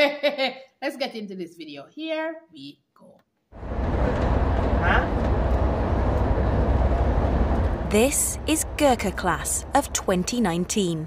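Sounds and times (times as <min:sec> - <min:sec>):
coach interior road rumble: 0:03.6 - 0:11.0.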